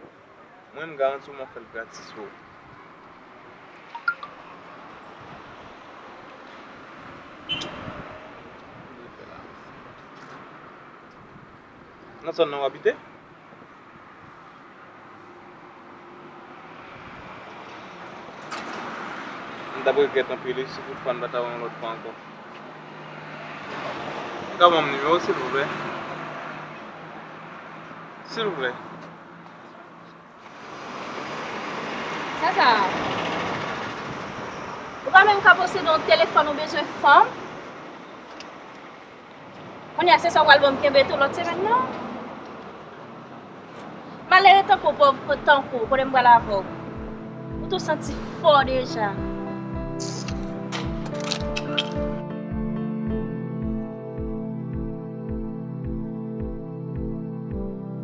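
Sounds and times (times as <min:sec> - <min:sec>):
street background noise: 0:00.0 - 0:58.0
bus passing by: 0:01.4 - 0:52.2.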